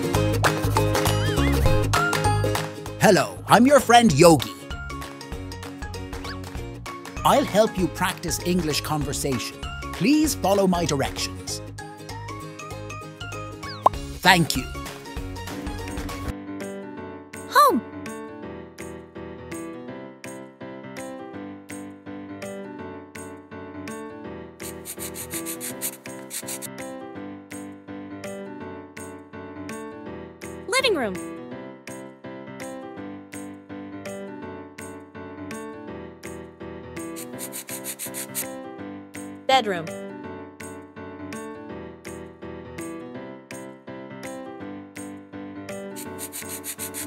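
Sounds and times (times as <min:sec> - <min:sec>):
keyboard background music: 0:00.0 - 0:47.0
pencil scribbling: 0:24.6 - 0:26.7, 0:37.2 - 0:38.5, 0:46.0 - 0:47.0.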